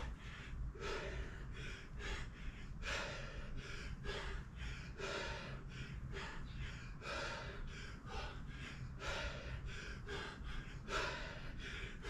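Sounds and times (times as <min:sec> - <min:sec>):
low steady hum: 0:00.0 - 0:12.0
man breathing hard: 0:00.0 - 0:12.0.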